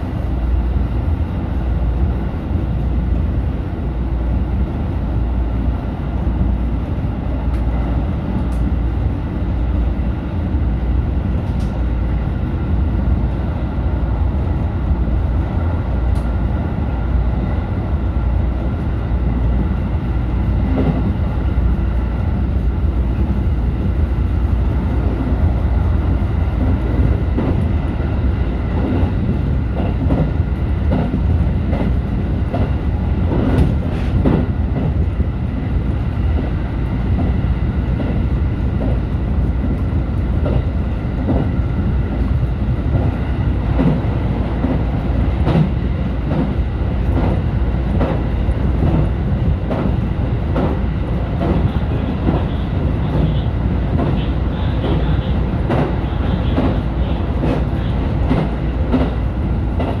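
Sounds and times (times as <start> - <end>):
electric train rumble: 0.0 - 60.0.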